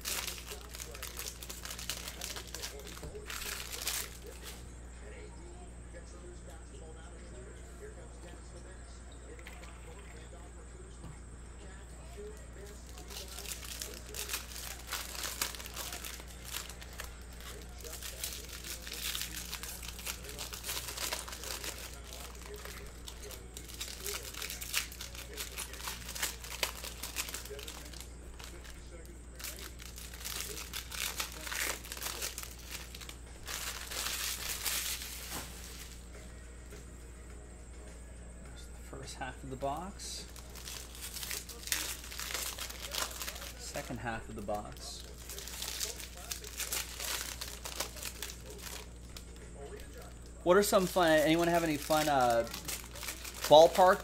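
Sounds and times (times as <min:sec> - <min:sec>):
plastic wrapper tearing and crinkling: 0:00.0 - 0:04.6, 0:12.3 - 0:36.1, 0:40.3 - 0:54.0
low steady hum: 0:00.0 - 0:54.0.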